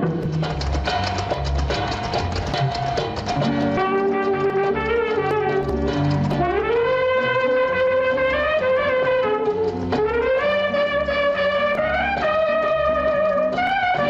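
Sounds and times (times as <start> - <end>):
brass playing held notes: 3.7 - 14.0.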